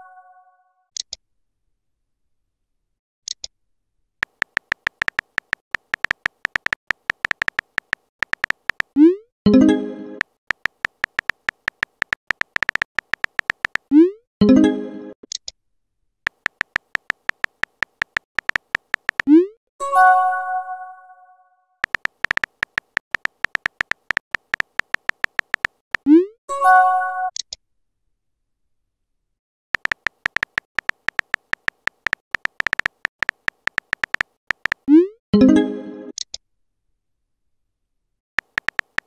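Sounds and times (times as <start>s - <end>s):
phone keyboard typing clicks: 4.2s - 9.0s, 10.2s - 13.9s, 16.3s - 19.4s, 21.8s - 26.1s, 29.8s - 35.0s, 38.4s - 39.0s.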